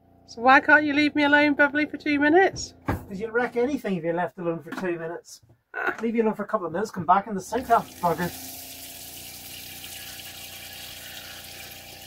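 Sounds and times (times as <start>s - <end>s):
water running into sink: 7.5s - 12.0s.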